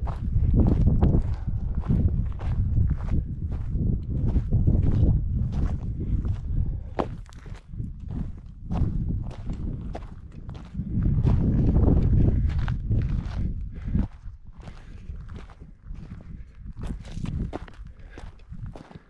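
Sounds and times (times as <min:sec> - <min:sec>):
wind rumbling on microphone: 0:00.0 - 0:19.0
footsteps on loose rock: 0:06.9 - 0:12.5.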